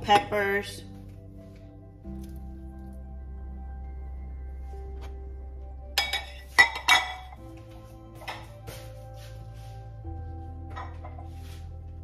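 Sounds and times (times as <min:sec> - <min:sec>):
soft background music: 0:00.0 - 0:12.0
glassware clinking: 0:06.0 - 0:07.4.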